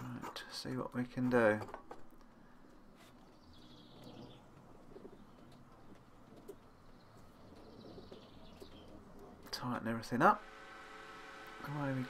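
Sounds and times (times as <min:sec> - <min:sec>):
faint high bird chirping: 0:03.2 - 0:09.4.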